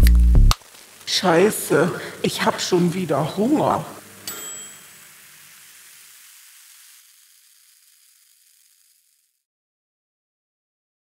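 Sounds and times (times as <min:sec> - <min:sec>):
hiss: 0:00.6 - 0:09.4
microwave timer ding: 0:04.2 - 0:05.1.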